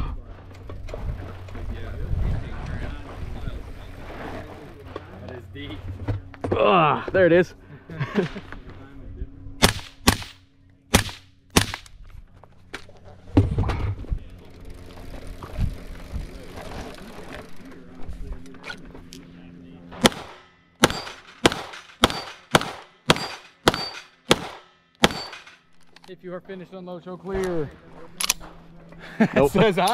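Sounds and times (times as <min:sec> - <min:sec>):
rapid pistol shots: 0:09.6 - 0:11.9, 0:20.0 - 0:25.6
rifle shots: 0:09.6 - 0:11.9, 0:20.0 - 0:25.6
ring of struck steel target: 0:20.8 - 0:25.5.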